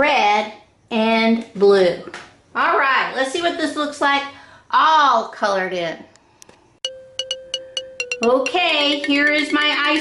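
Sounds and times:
chime jingle with ringing pings: 6.8 - 10.0.

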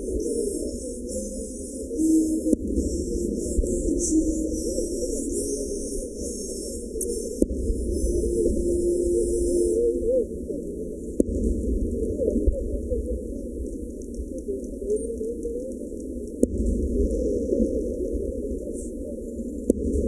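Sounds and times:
continuous low rumble: 0.0 - 20.0.

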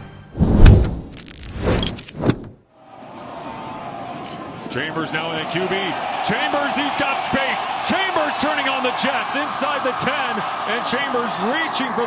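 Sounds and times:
sharp transition hits: 0.4 - 2.6
stadium crowd noise: 2.7 - 12.0.

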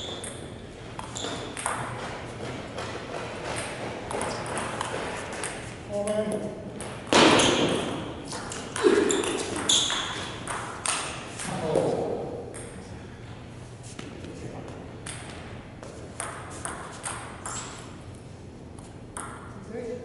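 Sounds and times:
table tennis balls clicking: 0.0 - 7.1, 8.4 - 11.6.

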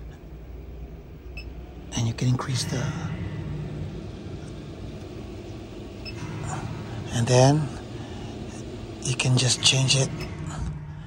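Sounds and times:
roof vent fan running: 0.0 - 11.0.

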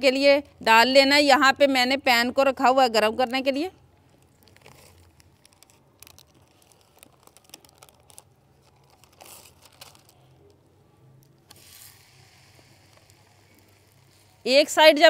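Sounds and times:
plastic sheet crinkling: 4.1 - 10.7, 11.3 - 14.7.

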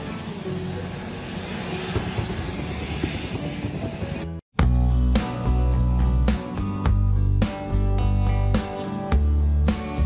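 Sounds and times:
aircraft engines running: 0.0 - 4.4.

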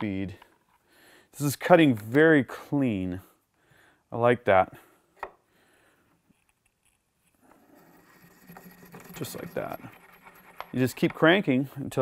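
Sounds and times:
case trimmer scraping brass: 7.4 - 11.5.

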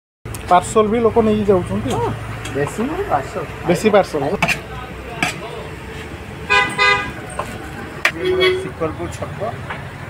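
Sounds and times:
street traffic hum: 0.3 - 10.0
vehicle horn honks: 6.5 - 7.2.

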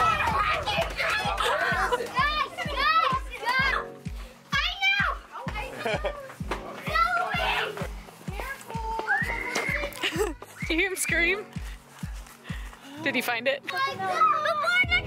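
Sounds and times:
music with steady bass beat: 0.0 - 9.4
children shouting and squealing: 0.0 - 11.6, 13.7 - 15.0.

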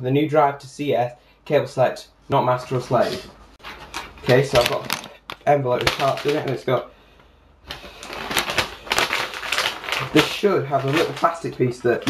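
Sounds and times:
paper envelope rustling: 3.6 - 6.7, 7.7 - 12.0.

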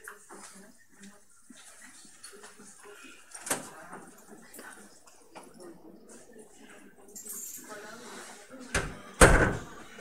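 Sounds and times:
faint voices: 0.0 - 10.0.

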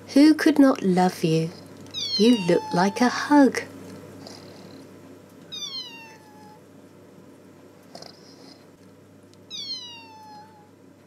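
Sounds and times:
faint steady hum: 0.0 - 11.0
high-pitched animal mewing call: 1.9 - 3.1, 5.5 - 6.6, 9.5 - 10.7.

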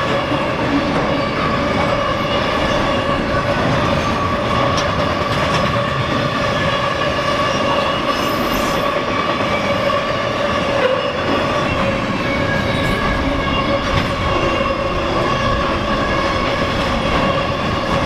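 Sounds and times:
freight train rumbling past: 0.0 - 18.0
high-pitched wheel squeal: 6.4 - 18.0.

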